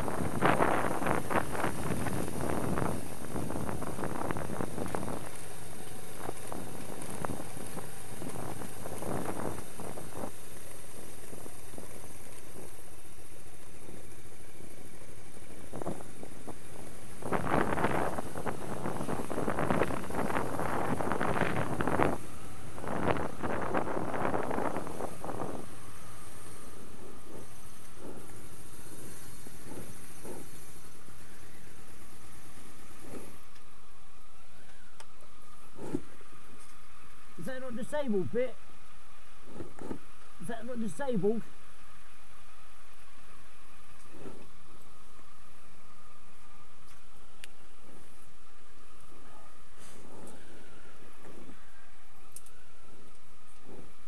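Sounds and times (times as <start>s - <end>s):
wind noise: 0.0s - 33.5s
motorcycle engine running: 0.0s - 54.0s.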